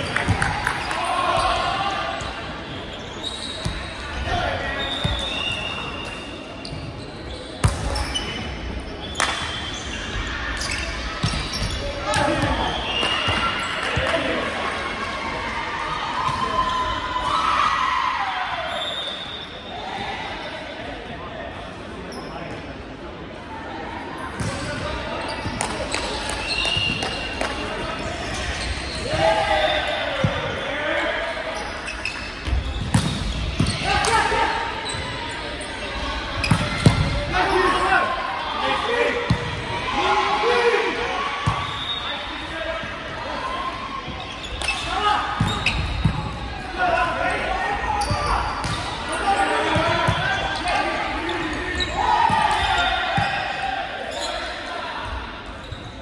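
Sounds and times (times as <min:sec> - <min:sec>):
players shouting: 0:27.8 - 0:31.5, 0:36.0 - 0:55.3
volleyball hits echoing: 0:32.4 - 0:34.3.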